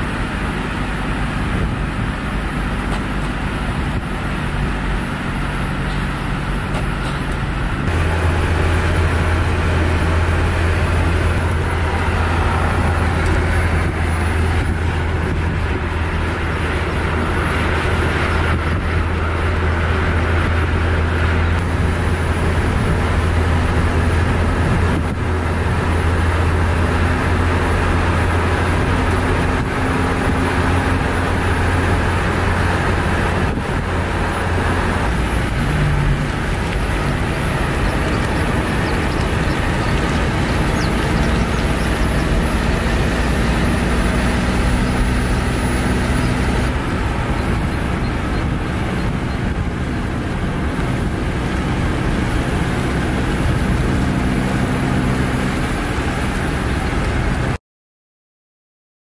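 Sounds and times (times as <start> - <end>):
road and tyre noise: 0.0 - 57.6.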